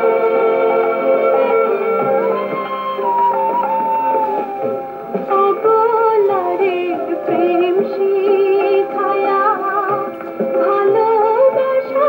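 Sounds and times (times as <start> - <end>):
instrumental accompaniment: 0.0 - 12.0
woman singing: 5.3 - 12.0.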